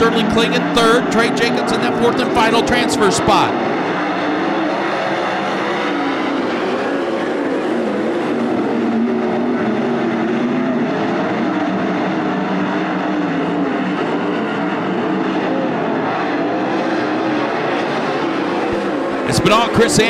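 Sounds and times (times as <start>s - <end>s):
race car engines: 0.0s - 20.0s.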